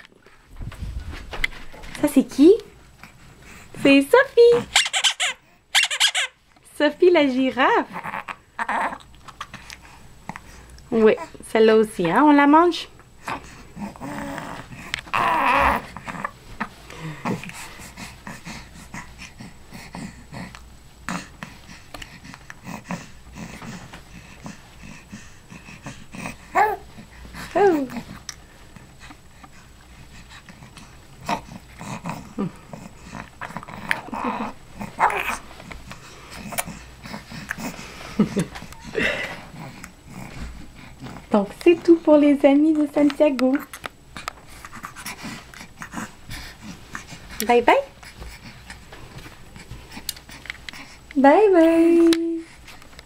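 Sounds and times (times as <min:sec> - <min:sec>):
baby grunting and breathing: 0:07.8 - 0:10.6, 0:13.2 - 0:28.3, 0:30.1 - 0:41.4, 0:44.2 - 0:48.9
baby vocal sound: 0:07.9 - 0:09.1, 0:13.3 - 0:16.3, 0:25.8 - 0:26.9, 0:31.2 - 0:35.4.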